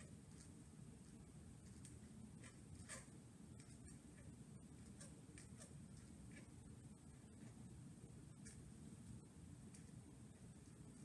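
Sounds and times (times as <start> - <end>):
pencil scratching on paper: 0.0 - 6.6.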